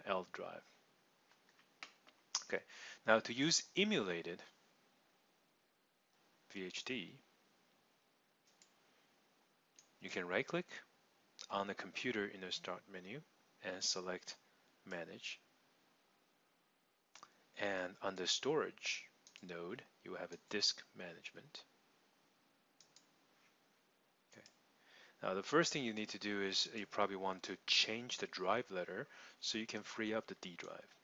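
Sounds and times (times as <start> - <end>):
computer mouse click: 8.4 - 8.8, 22.8 - 23.1.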